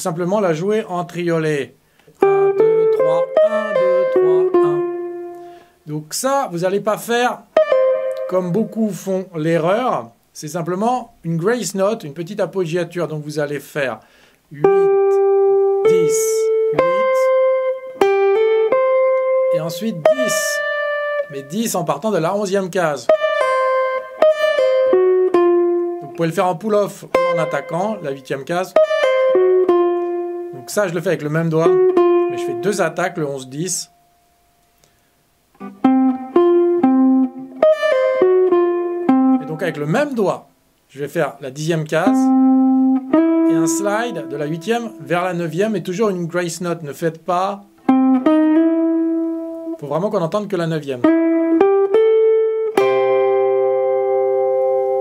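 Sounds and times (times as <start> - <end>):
jazz guitar single notes: 0.0 - 13.2, 14.5 - 55.0.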